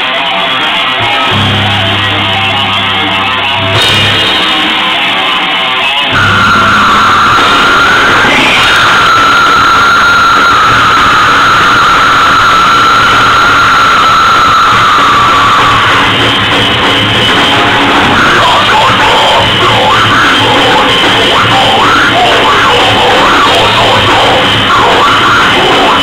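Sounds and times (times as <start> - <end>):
heavy rock band playing live: 0.0 - 26.0
high held note: 1.0 - 5.5, 6.1 - 8.5.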